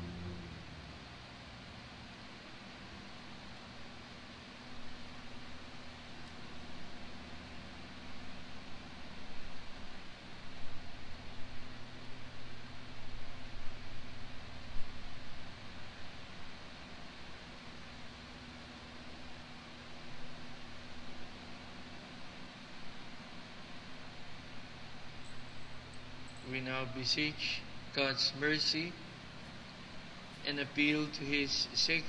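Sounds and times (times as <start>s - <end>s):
low rumble: 0.0s - 1.7s
low hum: 0.0s - 18.4s.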